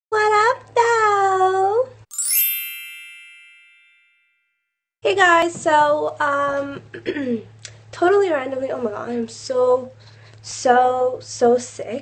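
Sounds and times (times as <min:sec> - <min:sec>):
sparkly chime sound effect: 0:02.1 - 0:04.4.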